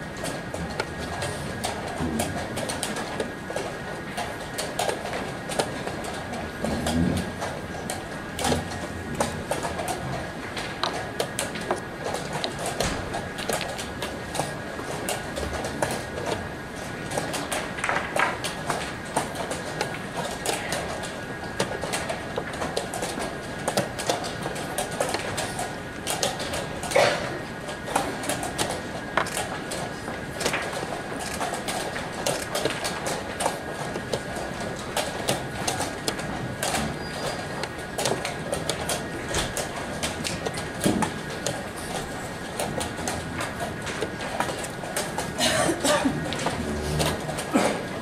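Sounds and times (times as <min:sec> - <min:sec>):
steady background hum: 0:00.0 - 0:48.0.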